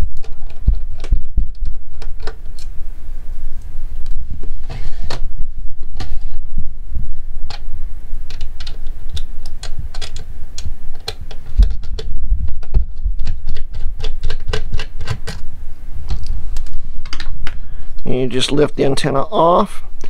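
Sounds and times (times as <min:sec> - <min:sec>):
low rumble: 0:00.0 - 0:14.2.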